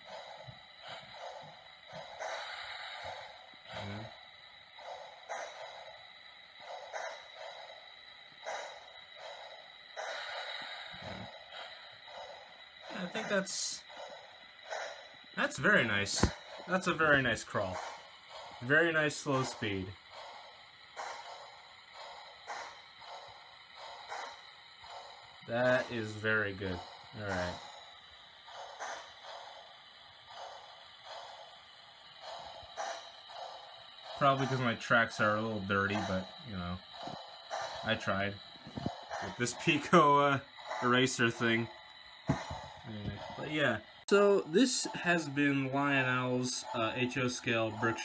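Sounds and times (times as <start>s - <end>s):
faint high whine: 0.0s - 28.4s, 31.4s - 48.0s
model steam locomotive chugging: 0.0s - 48.0s
soft hissing pulses: 0.0s - 48.0s.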